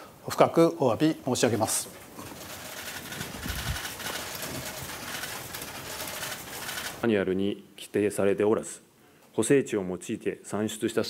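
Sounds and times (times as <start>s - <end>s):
camera shutters clicking: 2.8s - 7.0s.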